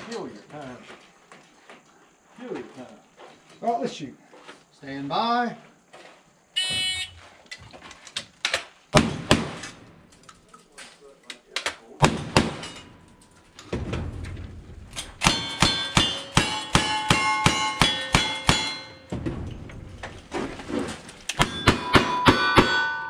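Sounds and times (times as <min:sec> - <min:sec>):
gunshots: 0:08.9 - 0:10.0, 0:11.9 - 0:12.9, 0:13.7 - 0:20.5
steel plates ringing: 0:15.0 - 0:19.2, 0:21.4 - 0:23.0.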